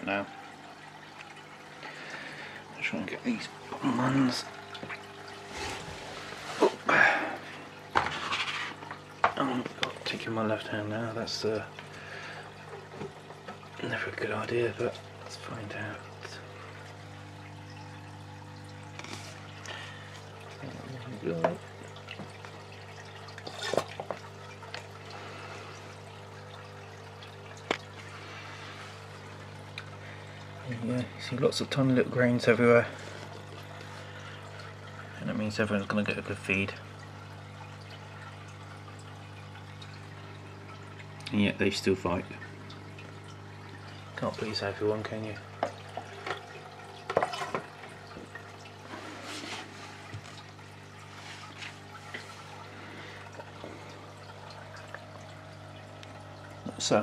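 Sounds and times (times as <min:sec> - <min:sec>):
water trickling in an aquarium: 0:00.0 - 0:57.0
faint watery hiss: 0:28.0 - 0:31.5.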